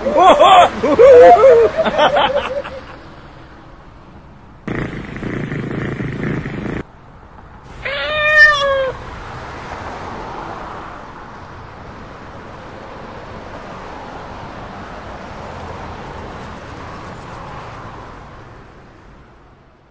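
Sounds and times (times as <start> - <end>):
cat meowing: 7.7 - 9.0.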